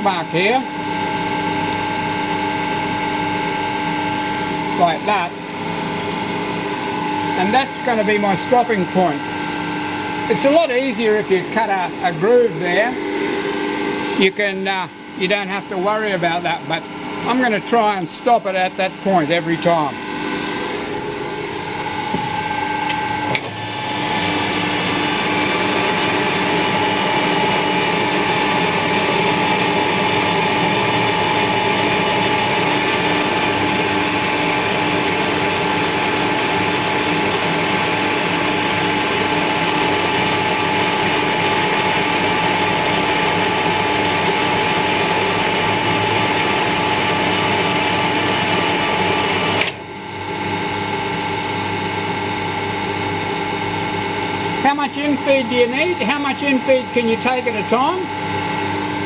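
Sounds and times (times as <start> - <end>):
metal lathe whine: 0.0 - 59.0.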